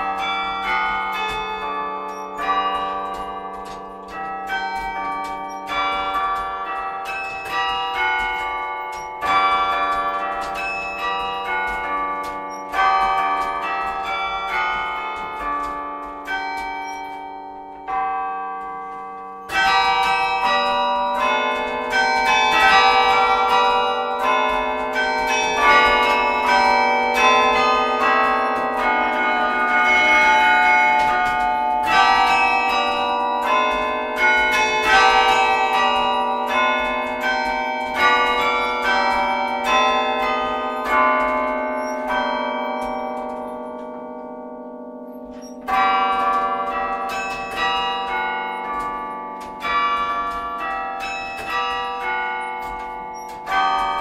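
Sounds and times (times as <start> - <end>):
carillon bells playing a tune: 0.0 - 54.0.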